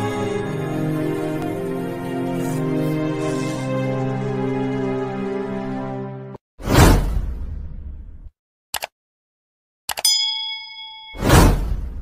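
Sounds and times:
bright bell ding: 10.0 - 11.7.

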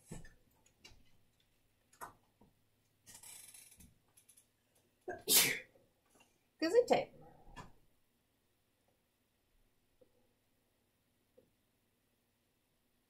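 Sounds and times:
person sneezing: 5.1 - 5.7.

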